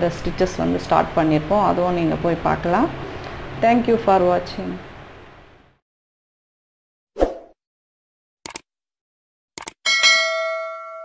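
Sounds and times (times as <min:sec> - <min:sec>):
quick double click: 0:08.4 - 0:08.6, 0:09.6 - 0:09.8
bright bell ding: 0:09.9 - 0:11.0.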